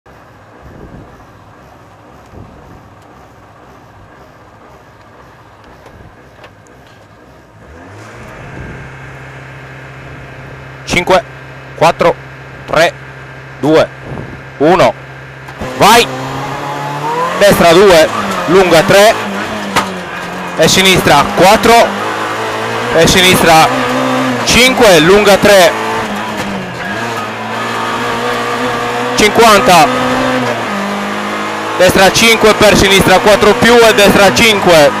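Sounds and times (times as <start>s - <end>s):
car engine idling and revving: 0.1s - 35.0s.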